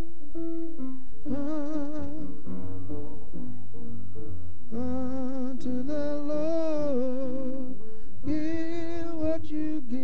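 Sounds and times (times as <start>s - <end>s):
person singing slow melody: 0.0s - 10.0s
soft accompaniment: 0.0s - 10.0s.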